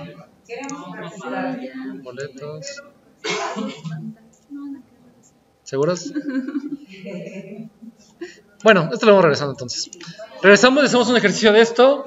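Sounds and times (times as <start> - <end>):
person clearing throat: 3.2 - 4.0.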